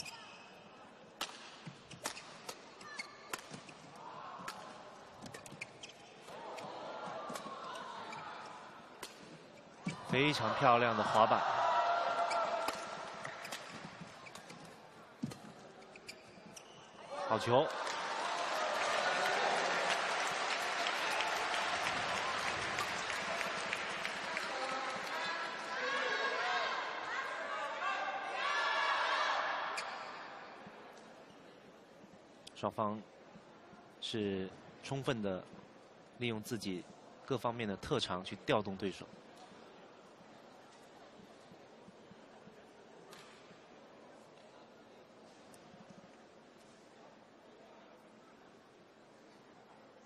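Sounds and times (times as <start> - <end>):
rackets hitting shuttlecock: 1.2 - 2.6, 12.6 - 15.5
shoes squeaking on court: 1.6 - 4.0, 5.2 - 10.1, 12.2 - 17.0
many hands clapping: 17.7 - 25.2.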